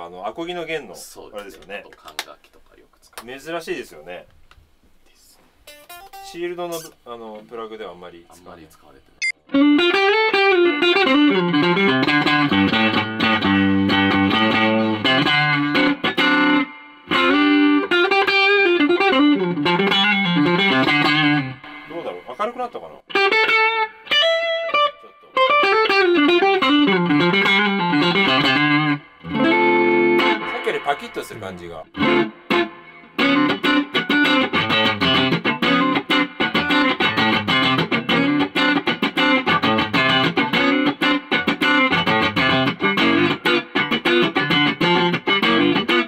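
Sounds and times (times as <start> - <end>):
electric guitar through amplifier: 9.5 - 22.3, 23.1 - 31.1, 31.9 - 46.0.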